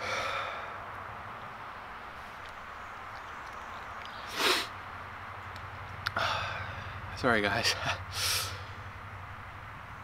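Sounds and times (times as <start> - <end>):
steady background hiss: 0.0 - 10.0
man sighing: 6.1 - 6.8.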